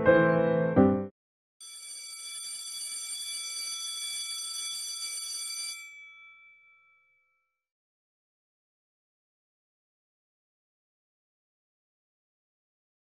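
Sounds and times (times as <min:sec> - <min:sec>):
electric school bell ringing: 0:01.6 - 0:07.2.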